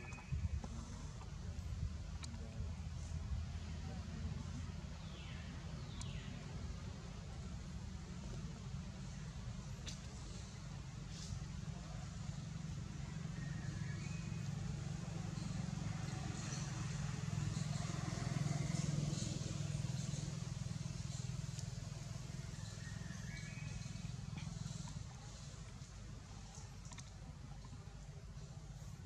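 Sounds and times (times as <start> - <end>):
distant motor vehicle hum: 0.0 - 29.0.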